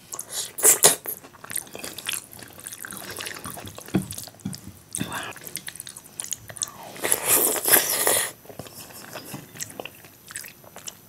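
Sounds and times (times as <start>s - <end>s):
mouth chewing: 0.1s - 11.0s.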